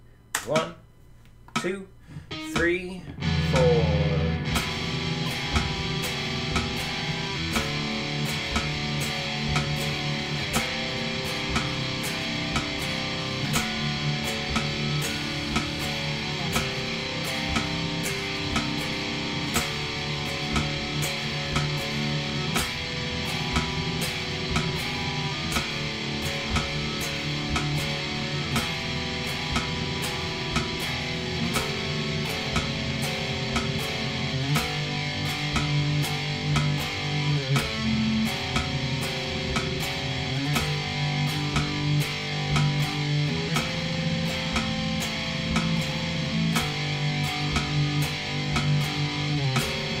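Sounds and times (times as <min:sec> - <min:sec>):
metronome clicking: 0:00.2 - 0:50.0
electric guitar chord riff: 0:01.6 - 0:50.0.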